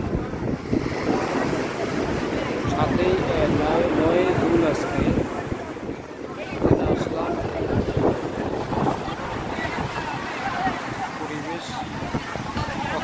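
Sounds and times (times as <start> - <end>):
faint voices: 0.0 - 13.0
sea surf breaking: 0.0 - 13.0
wind gusts on microphone: 0.0 - 13.0.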